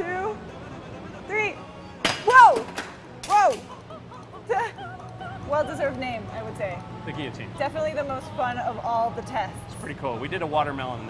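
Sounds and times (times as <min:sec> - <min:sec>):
people laughing: 0:03.6 - 0:06.1.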